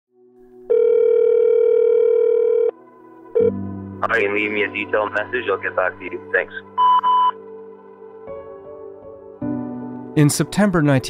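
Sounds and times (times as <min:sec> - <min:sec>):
telephone ringback tone: 0:00.7 - 0:02.8, 0:03.4 - 0:03.6.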